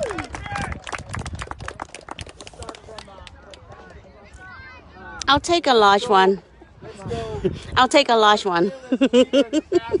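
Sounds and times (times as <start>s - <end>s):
group clapping hands: 0.0s - 3.8s.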